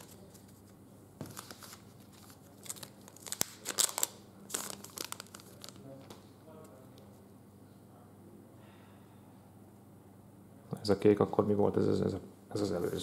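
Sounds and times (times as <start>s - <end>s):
foil wrapper tearing and crinkling: 1.4s - 5.9s.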